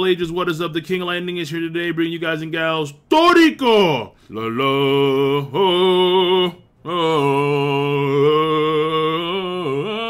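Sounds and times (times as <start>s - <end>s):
man singing long notes: 4.3s - 10.0s.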